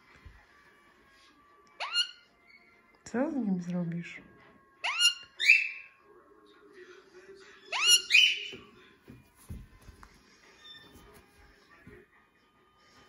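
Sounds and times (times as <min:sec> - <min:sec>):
parakeet whistled calls: 0:01.8 - 0:02.3, 0:04.8 - 0:06.0, 0:07.7 - 0:08.6.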